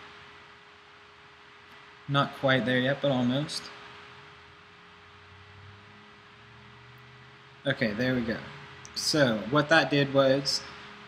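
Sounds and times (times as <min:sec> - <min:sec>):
low steady hum: 0:00.0 - 0:11.0
soft hiss: 0:00.0 - 0:11.0.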